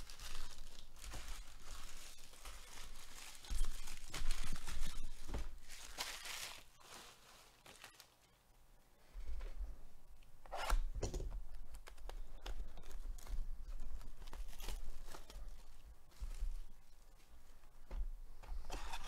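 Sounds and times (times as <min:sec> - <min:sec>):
card packaging tearing and crinkling: 0:00.0 - 0:08.1, 0:14.0 - 0:15.6.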